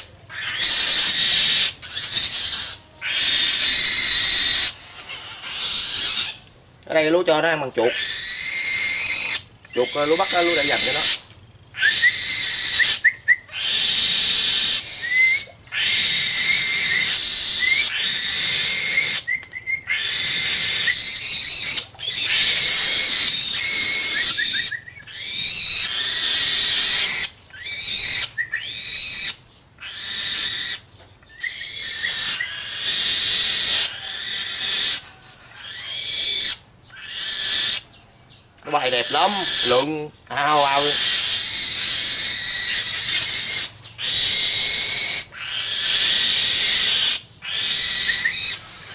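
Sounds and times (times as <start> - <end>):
young falcon screeching: 0.0 - 37.9, 38.6 - 48.9.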